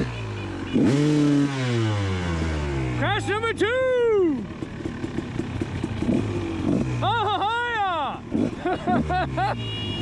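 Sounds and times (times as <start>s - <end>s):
dirt bike engines idling: 1.8s - 10.0s.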